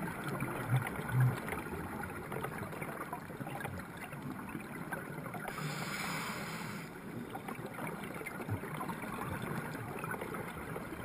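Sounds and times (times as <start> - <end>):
scuba exhaust bubbles: 0.0 - 11.0.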